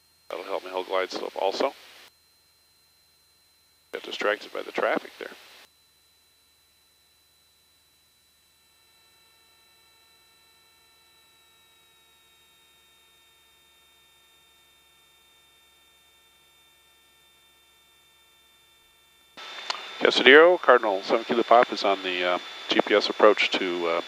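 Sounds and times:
faint steady high tones: 0:00.0 - 0:24.0
radio transmitter hiss: 0:00.3 - 0:02.1, 0:03.9 - 0:05.7, 0:19.4 - 0:24.0.

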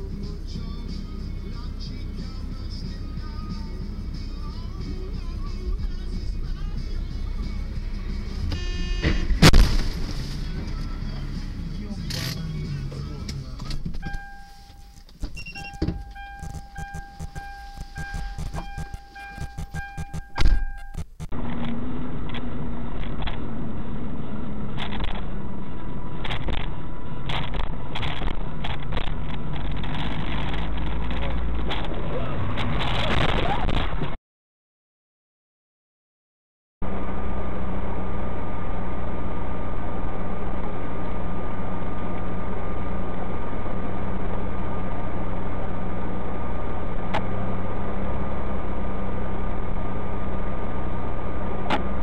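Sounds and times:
car engine and road noise: 0:00.0 - 0:34.2, 0:36.8 - 0:52.0
sharp impact: 0:08.4 - 0:10.7, 0:15.8 - 0:21.3
loud collision bang: 0:08.6 - 0:10.5.

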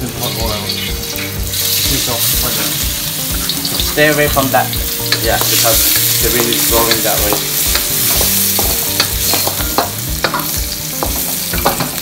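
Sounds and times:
food sizzling in hot oil: 0:00.0 - 0:12.0
spatula scraping a wok: 0:06.9 - 0:12.0.

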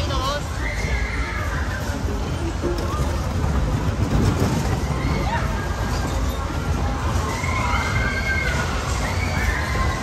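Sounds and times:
ride cars rumbling on steel platform: 0:00.0 - 0:10.0.

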